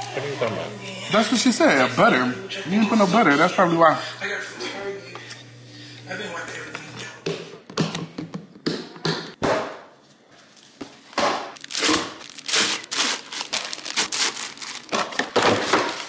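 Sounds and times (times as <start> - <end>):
plastic bags crinkling: 11.6 - 16.0
rice rustling in bags: 11.6 - 16.0.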